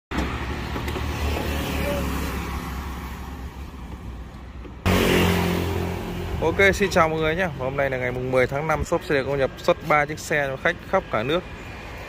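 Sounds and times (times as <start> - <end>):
traffic rumble: 0.1 - 12.0.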